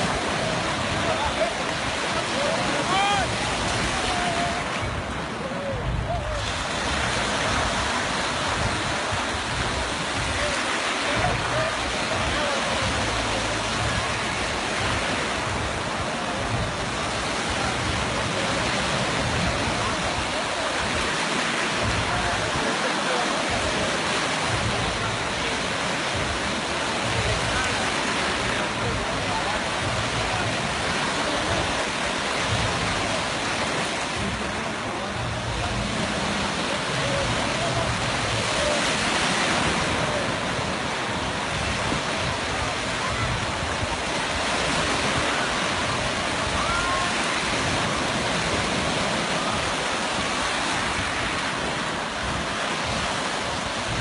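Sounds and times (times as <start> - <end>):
waves breaking on shore: 0.0 - 54.0
wind buffeting microphone: 0.0 - 54.0.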